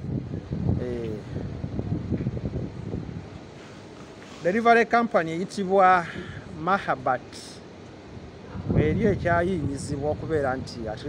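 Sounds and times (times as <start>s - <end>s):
wind rumble on microphone: 0.0s - 4.0s, 8.0s - 11.0s.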